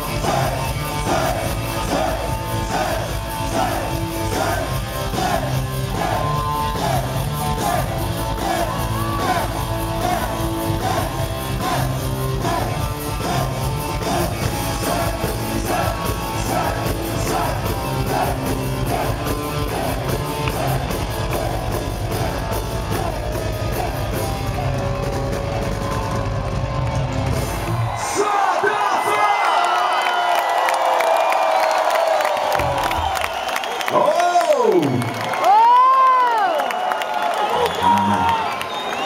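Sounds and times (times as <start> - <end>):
hard rock band playing live: 0.0 - 28.1
crowd cheering and whooping: 0.0 - 39.0.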